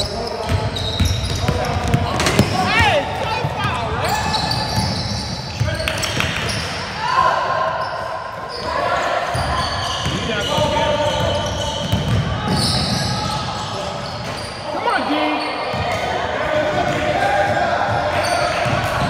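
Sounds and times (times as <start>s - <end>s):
sneakers squeaking: 0.0s - 16.8s, 17.5s - 19.0s
spectators' voices and calls: 0.0s - 19.0s.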